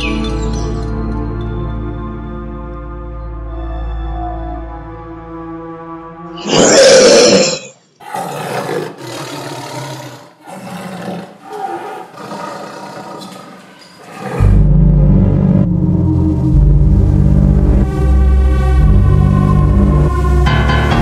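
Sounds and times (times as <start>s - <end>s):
deep rumbling music: 0.0s - 6.4s, 14.4s - 21.0s
tiger roaring: 6.4s - 14.7s.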